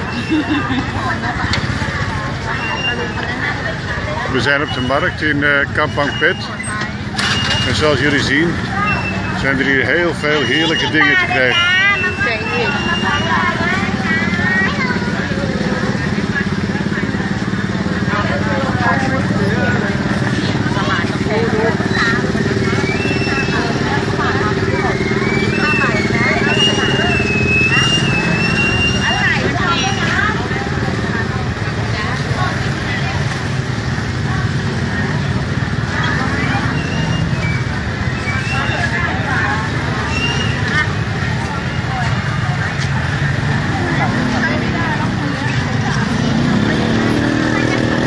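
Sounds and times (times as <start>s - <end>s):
motorcycles passing: 0.0s - 48.0s
vendors and shoppers talking: 0.0s - 48.0s.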